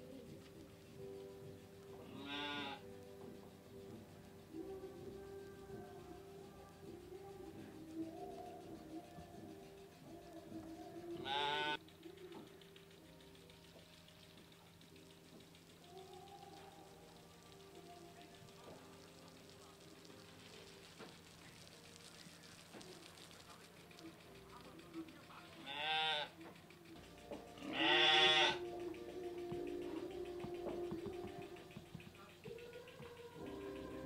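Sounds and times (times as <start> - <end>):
sheep bleating: 2.0 - 2.9, 11.2 - 11.8, 25.6 - 26.4, 27.6 - 28.7.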